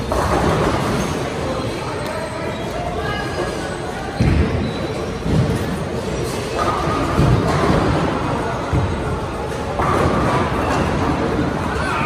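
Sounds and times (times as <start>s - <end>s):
chatter and rumble of bowling hall: 0.0s - 12.0s.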